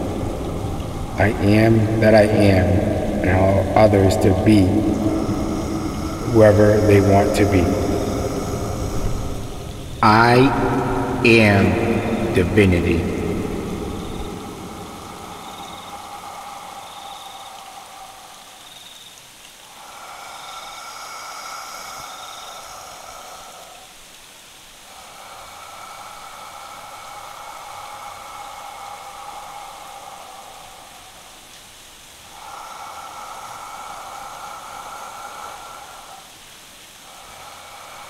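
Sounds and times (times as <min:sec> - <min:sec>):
soft sustained synth drone: 0:00.0 - 0:16.3
steady hiss: 0:00.0 - 0:38.0.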